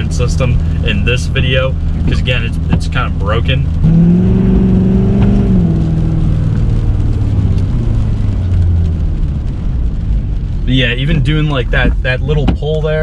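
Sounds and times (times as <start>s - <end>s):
diesel engine accelerating: 0.0s - 13.0s.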